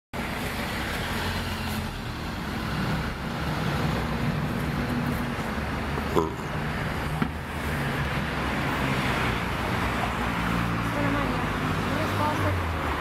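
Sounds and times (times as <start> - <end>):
road rumble: 0.2 - 13.0.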